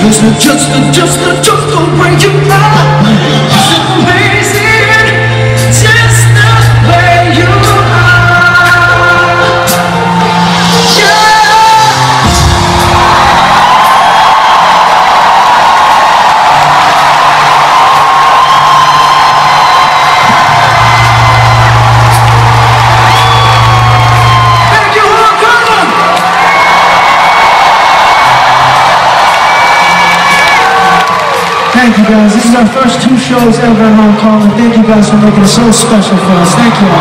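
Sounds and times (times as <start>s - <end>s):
live band playing pop chords: 0.0s - 37.0s
arena crowd screaming and whooping: 2.0s - 37.0s.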